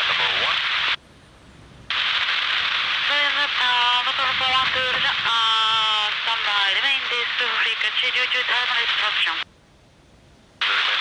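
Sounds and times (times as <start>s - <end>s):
radio static hiss: 0.0s - 1.0s, 1.9s - 9.5s, 10.6s - 11.0s.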